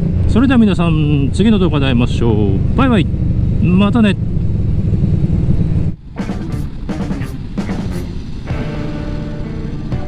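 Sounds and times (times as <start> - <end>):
motorcycle engine and wind rumble: 0.0 - 10.0.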